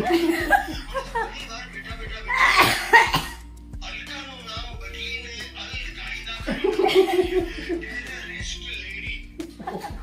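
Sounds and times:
music from phone speaker: 0.0s - 10.0s
person coughing: 2.3s - 3.4s.

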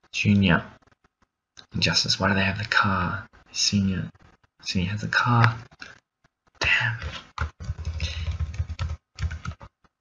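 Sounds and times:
computer keyboard keys clacking: 7.3s - 9.9s.

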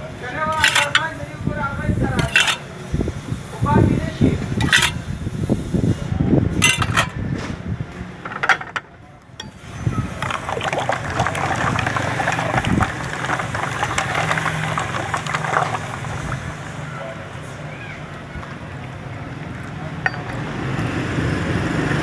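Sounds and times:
ladle sloshing water in a pot: 0.5s - 1.1s, 2.2s - 2.6s, 9.4s - 16.8s.

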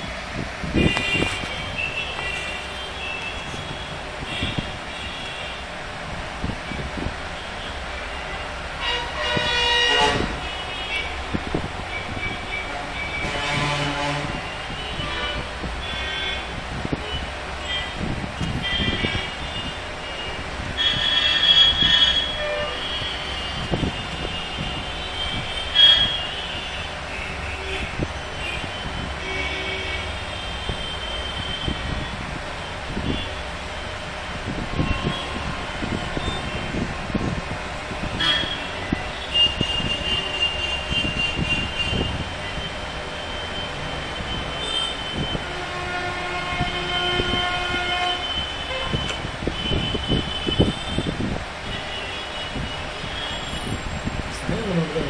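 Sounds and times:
traffic rumble: 0.0s - 55.0s.

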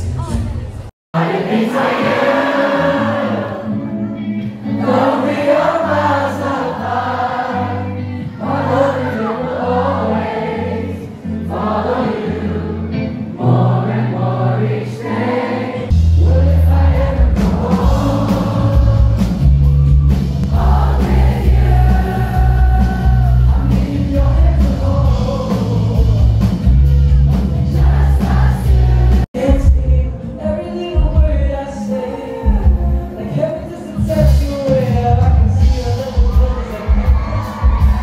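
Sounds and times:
bass and drums: 0.0s - 0.9s, 15.9s - 30.1s, 30.9s - 31.6s, 32.4s - 33.2s, 34.0s - 38.0s
person singing: 1.2s - 19.4s, 20.4s - 38.0s
electric guitar: 2.7s - 13.8s.

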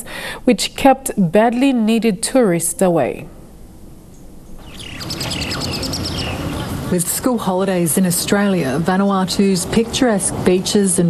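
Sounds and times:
low outdoor background noise: 0.0s - 11.0s
small birds chirping: 4.1s - 7.3s.

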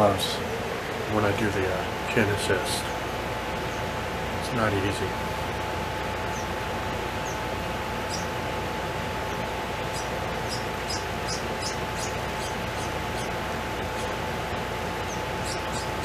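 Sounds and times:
faint constant hum: 0.0s - 16.0s
room and microphone hiss: 0.0s - 16.0s.

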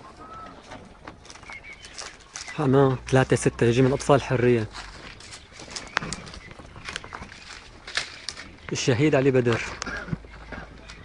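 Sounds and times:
faint bird calls: 0.0s - 11.0s.

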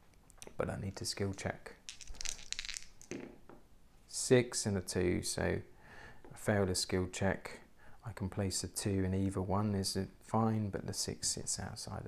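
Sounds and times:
dice rattling in a hand: 1.2s - 3.2s
dice rolling onto cloth: 1.2s - 3.5s.

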